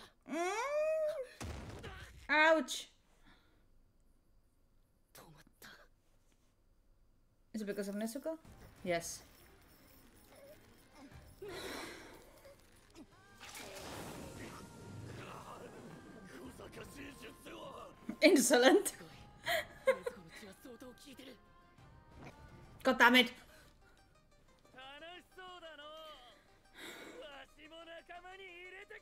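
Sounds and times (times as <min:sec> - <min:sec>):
person sighing: 0:00.0 - 0:01.4
background music: 0:07.5 - 0:29.0.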